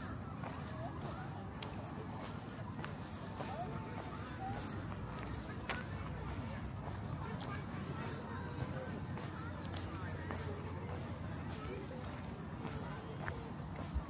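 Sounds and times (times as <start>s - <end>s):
footsteps on path: 0.0s - 14.0s.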